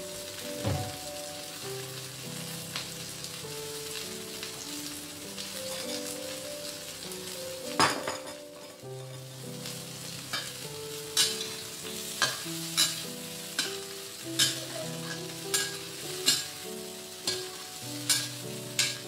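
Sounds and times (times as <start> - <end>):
shrimp sizzling in a wok: 0.0 - 19.0
metal spatula scraping a pan: 14.4 - 16.6, 17.3 - 19.0.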